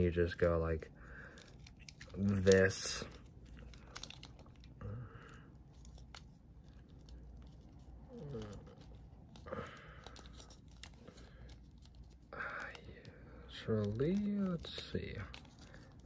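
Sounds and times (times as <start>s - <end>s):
plastic rubbing and clicking: 1.3s - 4.8s, 13.5s - 16.0s.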